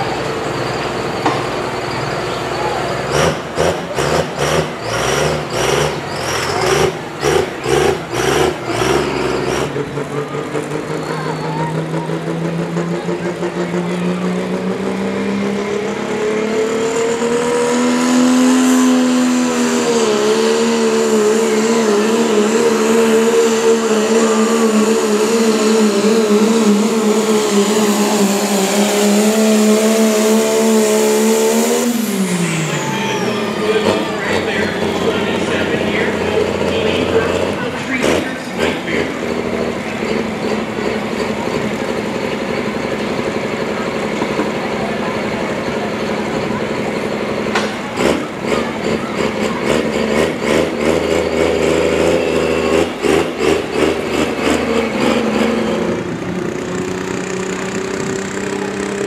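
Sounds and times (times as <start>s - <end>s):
diesel truck engine revving: 0.0s - 59.0s.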